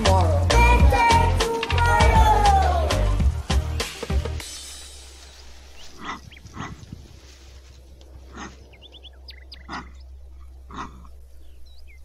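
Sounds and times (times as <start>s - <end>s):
animal giving hoarse calls: 5.8s - 7.2s, 8.1s - 11.3s.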